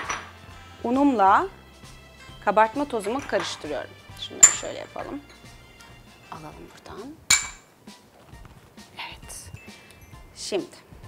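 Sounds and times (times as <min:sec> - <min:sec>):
glass bowl clinking: 0:03.0 - 0:05.6, 0:07.3 - 0:07.7.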